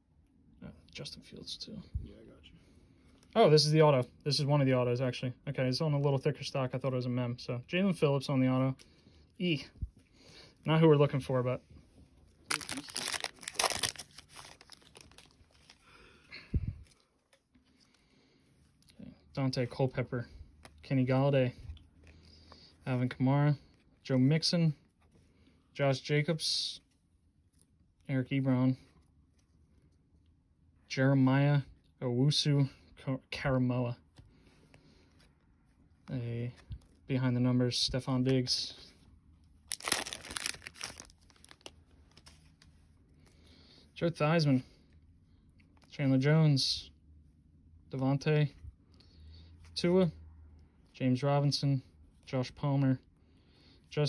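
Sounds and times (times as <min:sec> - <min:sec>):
foil wrapper tearing and crinkling: 0:12.4 - 0:15.8, 0:39.6 - 0:42.3.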